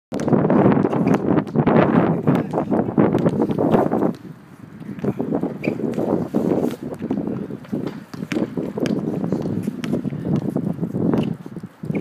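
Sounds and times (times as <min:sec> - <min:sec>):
wind buffeting microphone: 0:00.1 - 0:12.0
basketball dribbling: 0:00.2 - 0:12.0.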